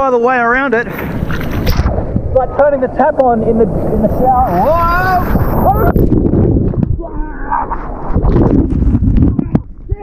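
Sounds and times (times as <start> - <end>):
ocean wave breaking: 0.8 - 6.0.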